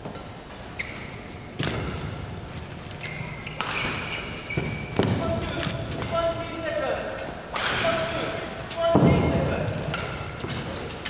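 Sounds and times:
shoe squeaks on court: 0.7 - 2.1, 2.8 - 5.6
voices: 5.0 - 11.0.

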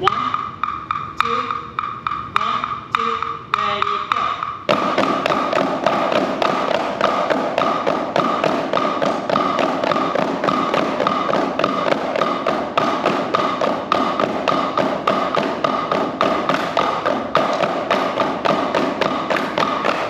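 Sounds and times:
drumsticks tapping practice pads: 0.0 - 20.0.

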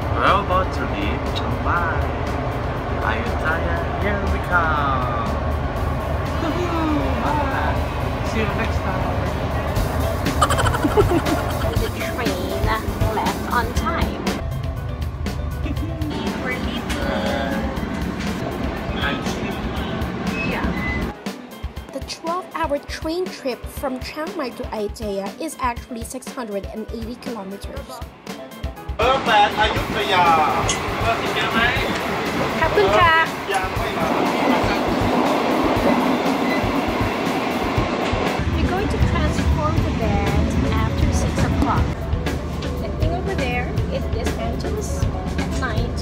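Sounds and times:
train rumbling and rattling: 0.1 - 10.2, 10.9 - 21.1, 29.1 - 46.0
music with steady beat: 9.8 - 17.5.

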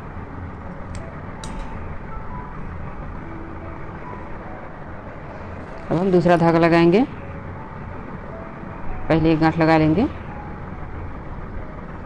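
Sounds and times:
low background hum and hiss: 0.0 - 12.0.

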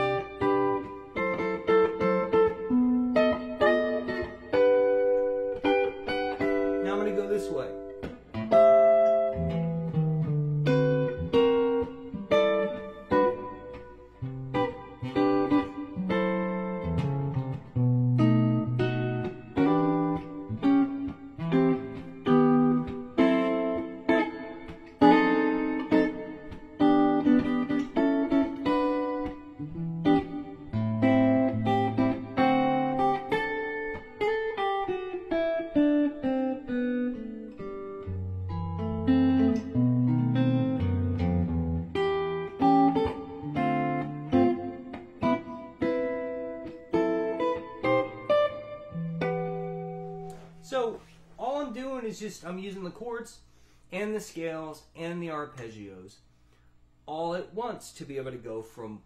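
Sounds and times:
solo jazz guitar: 0.0 - 52.0.

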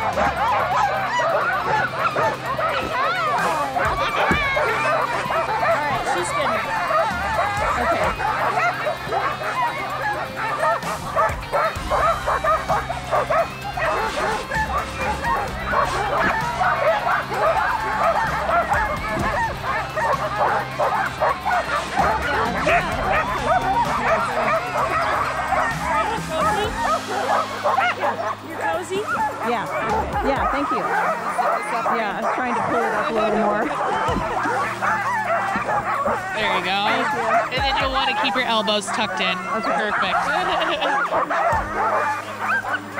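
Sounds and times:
dogs barking and yipping: 0.0 - 42.9
dogs whining: 0.0 - 42.9.

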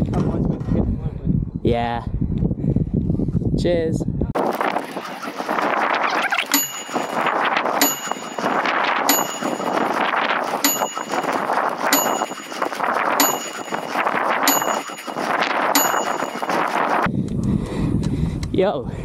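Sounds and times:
wind rush: 0.0 - 19.0
bike tyre noise: 4.4 - 17.1
bright ding: 6.5 - 7.2, 7.8 - 10.0, 10.6 - 16.8.

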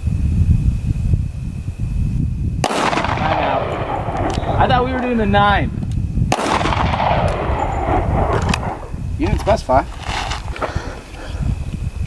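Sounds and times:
wind buffeting microphone: 0.0 - 12.0
pistol shot echoing: 2.6 - 5.2, 6.3 - 9.0.

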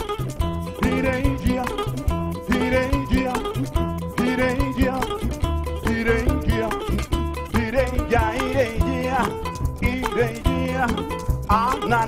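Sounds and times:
calabash drum beating: 0.0 - 12.0
double bass notes: 0.0 - 12.0
plucked strings: 0.0 - 12.0
person singing wordless syllables: 0.8 - 5.2, 5.8 - 12.0.

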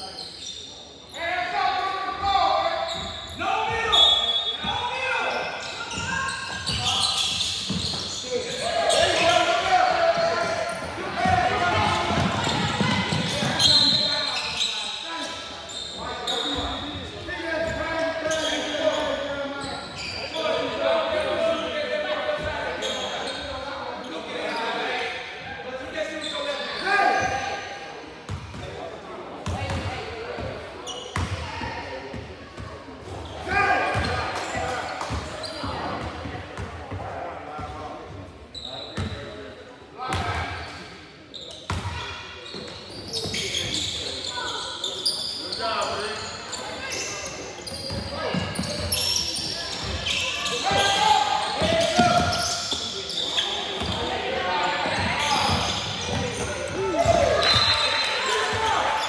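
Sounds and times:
people calling out and talking: 0.0 - 59.0.

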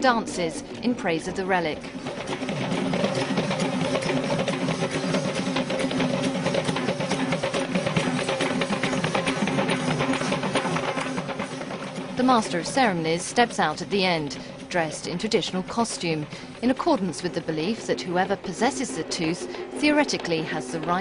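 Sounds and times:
drums beaten fast: 0.0 - 21.0.

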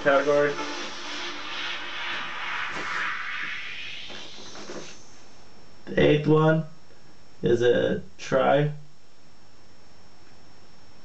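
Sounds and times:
steady hiss: 0.0 - 8.6.

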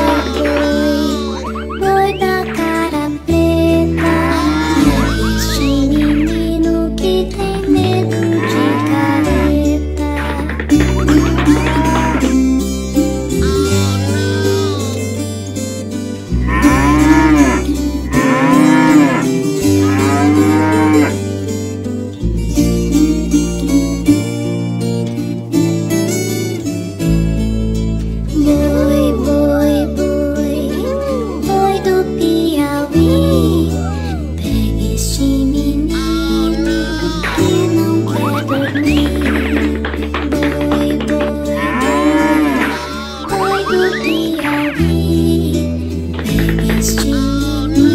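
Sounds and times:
children's song: 0.0 - 15.0, 28.3 - 47.9
backing music: 0.0 - 24.9, 25.9 - 47.9
bull mooing: 4.0 - 5.6, 8.2 - 9.6, 11.3 - 12.4, 13.4 - 15.0, 16.3 - 21.3, 41.4 - 44.6.

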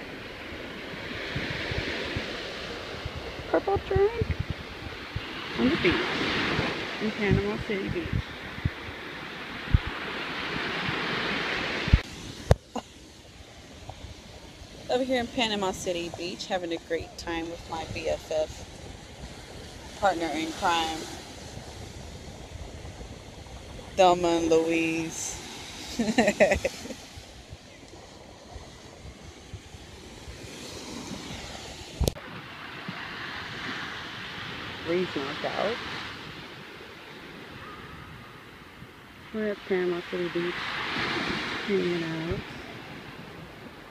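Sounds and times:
surf breaking on sand: 0.0 - 43.9
wind buffeting microphone: 0.0 - 43.9.

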